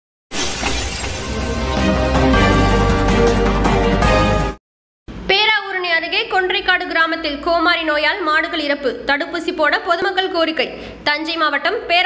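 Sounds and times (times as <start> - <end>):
shattering crash effect: 0.3 - 2.6
intro music: 1.1 - 4.6.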